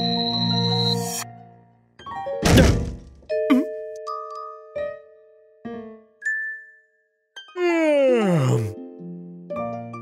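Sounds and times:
heavy cartoon thud: 2.4 - 3.1.

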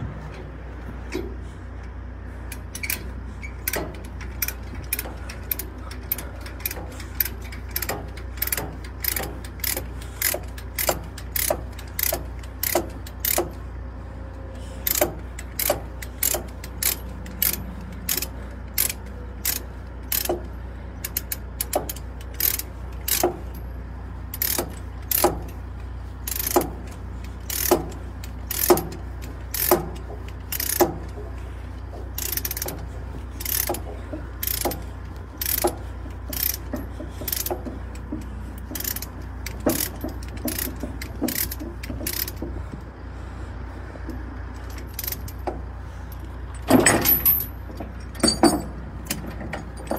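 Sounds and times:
steady low hum: 0.0 - 49.9
ratchet pawl clicking: 2.5 - 13.7, 14.6 - 42.8, 44.0 - 49.9.

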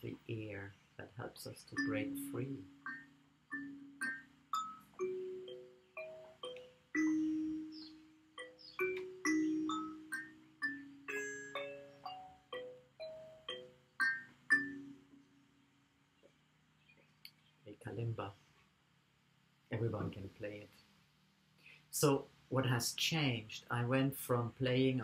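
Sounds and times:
kalimba plucked notes: 1.8 - 15.3.

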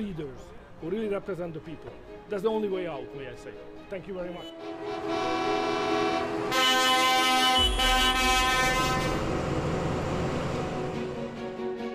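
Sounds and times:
tractor horn blast: 4.4 - 9.3
low engine rumble: 7.6 - 11.4.

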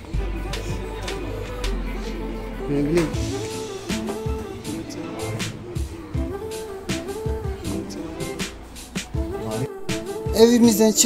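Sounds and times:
guitar music over a beat: 0.0 - 10.4.

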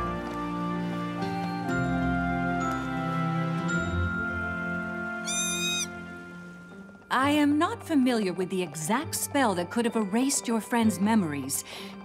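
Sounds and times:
brief high-pitched tone: 5.3 - 5.9.

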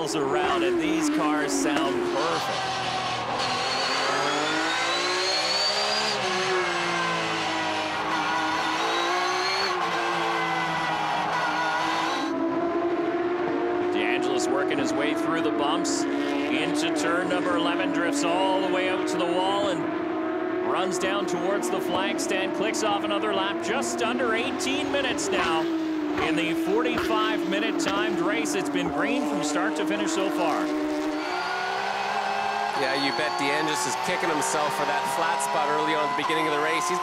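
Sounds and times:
race car engine revving: 0.0 - 37.0.

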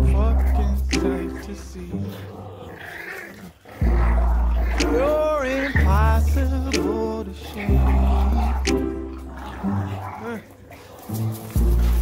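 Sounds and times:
hip-hop beat with heavy bass: 0.0 - 2.0, 4.7 - 9.1
man singing: 0.0 - 2.1, 4.7 - 8.9
puppies play-growling: 0.0 - 12.0.

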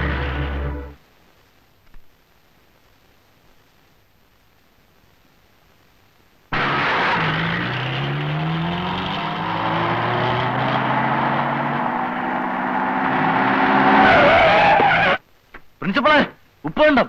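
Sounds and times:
tyres skidding on dirt: 6.5 - 15.2
engines running hard: 6.6 - 14.1
tyre squeal: 13.3 - 15.2.

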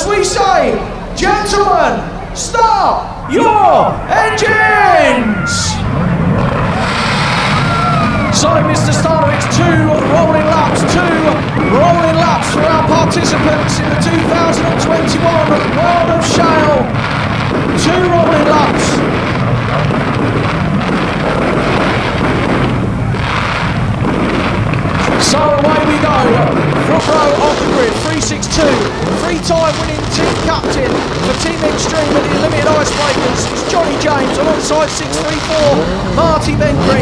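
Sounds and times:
fireworks crackling and banging: 0.0 - 37.0
low rumble: 0.0 - 37.0
many race car engines running: 4.8 - 37.0.

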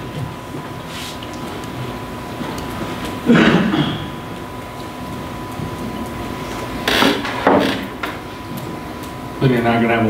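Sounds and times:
faint constant whine: 0.0 - 10.0
steady hum: 0.0 - 10.0.

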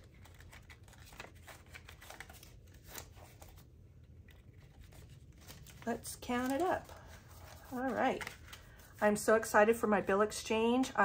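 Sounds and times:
banknotes crinkling: 0.0 - 9.3.

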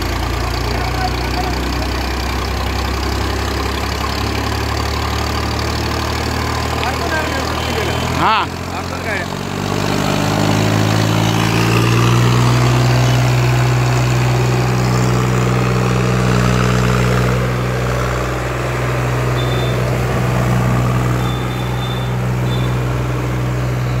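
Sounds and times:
tractor diesel engine under load: 0.0 - 24.0.

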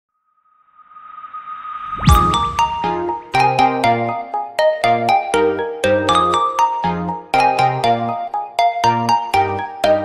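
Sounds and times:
steady high tone: 0.6 - 3.9
whooshing swell: 0.8 - 3.4.

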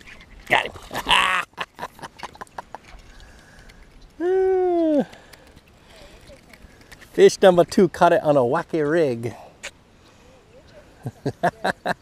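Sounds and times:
light water splashing: 0.0 - 7.9.

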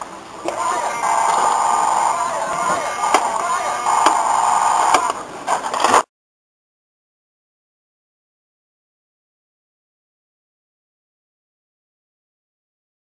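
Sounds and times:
robotic voice: 0.4 - 5.2
toy robot electronic sound effects: 0.4 - 5.2
sharp clicks: 3.0 - 6.0.

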